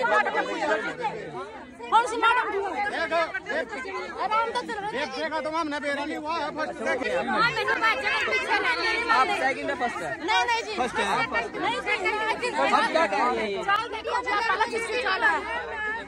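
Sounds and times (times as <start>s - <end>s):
women talking over one another: 0.0s - 16.0s.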